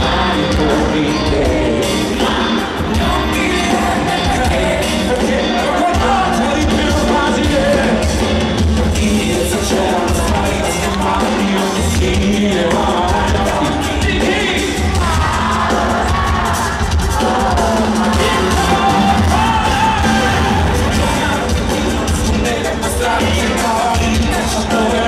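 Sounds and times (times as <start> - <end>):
live pop song over loudspeakers: 0.0 - 25.0
male lead vocal: 0.0 - 25.0.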